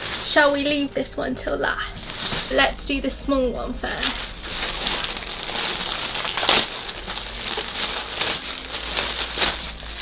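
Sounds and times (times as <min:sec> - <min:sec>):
plastic bag crinkling: 0:00.0 - 0:01.0, 0:02.0 - 0:02.8, 0:03.9 - 0:10.0.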